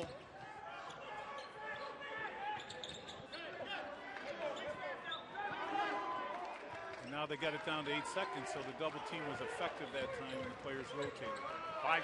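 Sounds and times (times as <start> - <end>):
crowd and player voices: 0.0 - 12.0.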